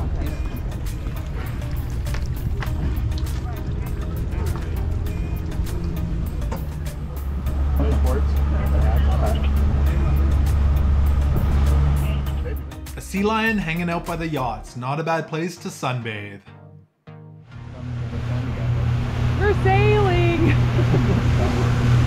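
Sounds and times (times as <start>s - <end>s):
boat motor droning: 0.0s - 12.8s, 17.5s - 22.0s
voices: 2.7s - 10.8s, 17.7s - 22.0s.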